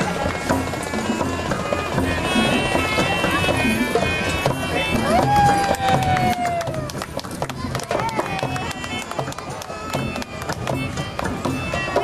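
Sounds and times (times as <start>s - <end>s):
flute playing sliding notes: 0.0s - 6.9s, 8.2s - 12.0s
hand drums playing fast: 0.0s - 12.0s.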